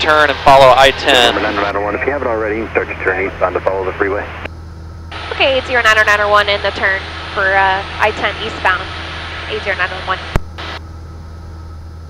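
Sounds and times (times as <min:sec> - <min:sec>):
airplane engine drone: 0:00.0 - 0:12.0
radio static burst: 0:05.2 - 0:10.8.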